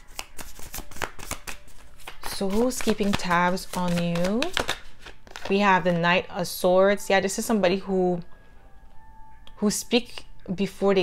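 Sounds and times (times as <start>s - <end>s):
cards being shuffled: 0.0s - 5.6s.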